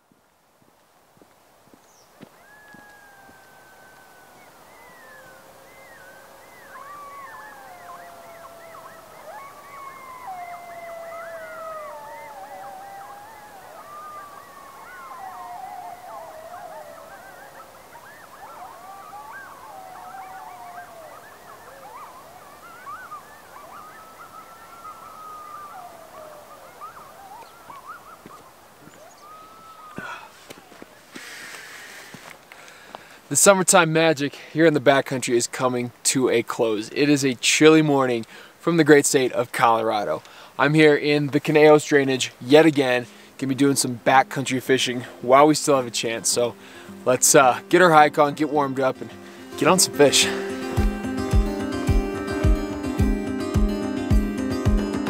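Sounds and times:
coyotes howling and yipping: 0:01.9 - 0:32.5, 0:34.5 - 0:55.0.

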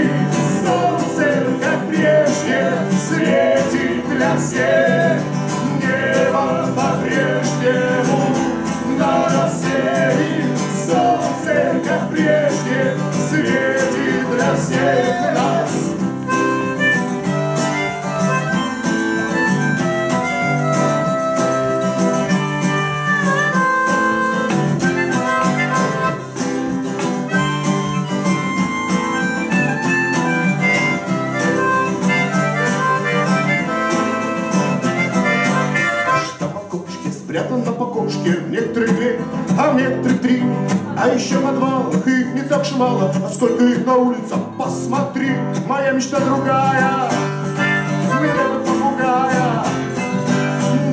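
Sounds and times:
person singing: 0:00.0 - 0:26.4, 0:27.2 - 0:50.9
acoustic guitar strumming: 0:00.0 - 0:50.9.

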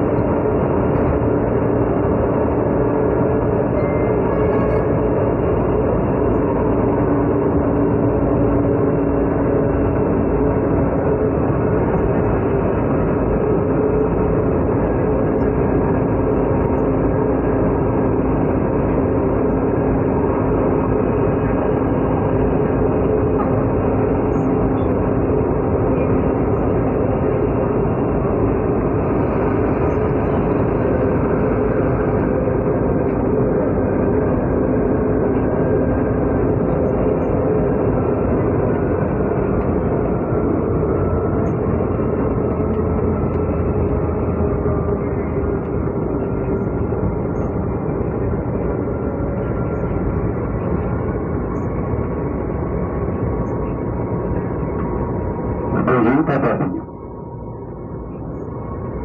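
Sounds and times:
train rumbling: 0:00.0 - 0:59.0.

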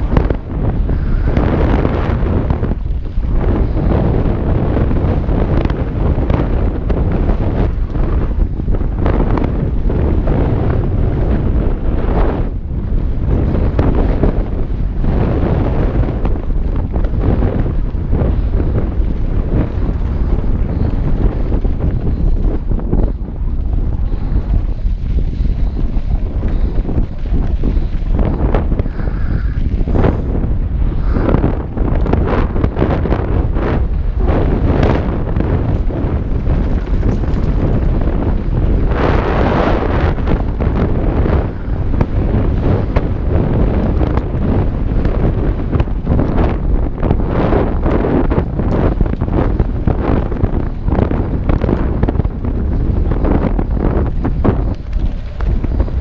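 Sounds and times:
wind buffeting microphone: 0:00.0 - 0:56.0
bike knocks and rattles: 0:34.5 - 0:38.8.

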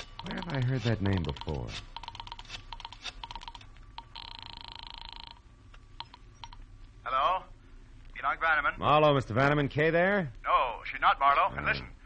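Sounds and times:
rotary dial clicking: 0:00.0 - 0:05.4
buzzing telephone ring: 0:00.0 - 0:06.6.

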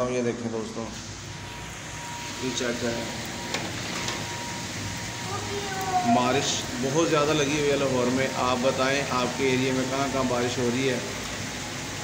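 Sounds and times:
heavy rain on rooftops: 0:02.0 - 0:12.0.

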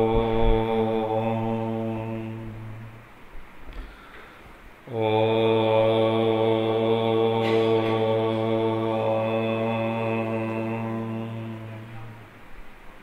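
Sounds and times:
man chanting om: 0:00.0 - 0:03.0, 0:04.8 - 0:12.4.

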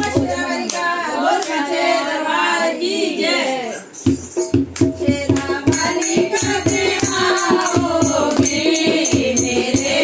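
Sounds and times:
woman singing devotional song: 0:00.0 - 0:10.0.

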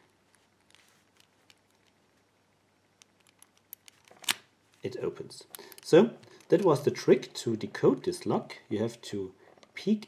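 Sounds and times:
padlock shackle snapping open: 0:03.0 - 0:04.5.

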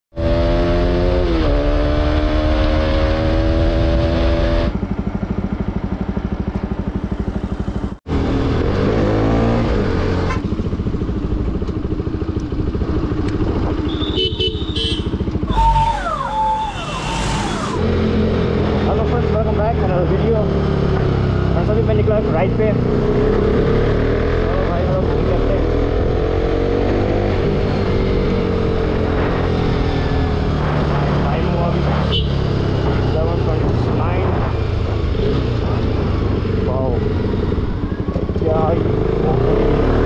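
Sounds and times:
motorcycle engine running: 0:00.2 - 0:40.0.

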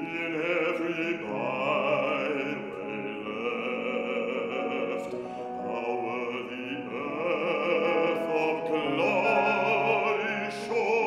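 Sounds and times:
grand piano: 0:00.0 - 0:11.0
man singing with vibrato: 0:00.0 - 0:11.0.

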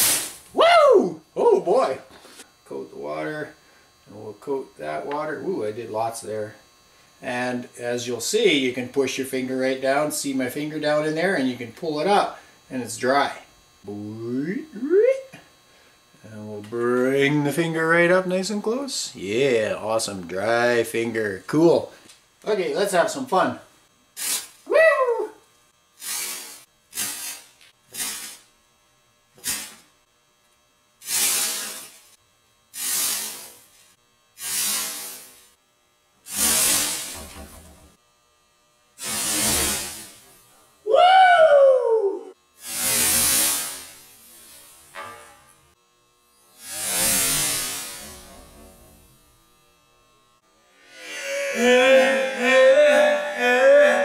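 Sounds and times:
person whooping: 0:00.5 - 0:01.8, 0:14.8 - 0:15.3, 0:24.7 - 0:25.4, 0:40.8 - 0:42.4, 0:50.9 - 0:54.0
fireball whooshing bursts: 0:46.6 - 0:48.0.

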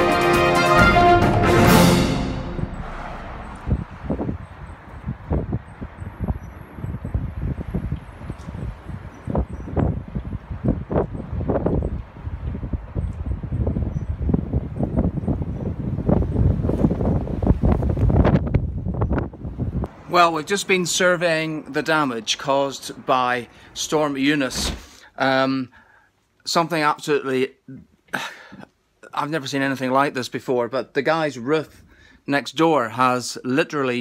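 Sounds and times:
gusty wind buffeting microphone: 0:02.4 - 0:20.1.

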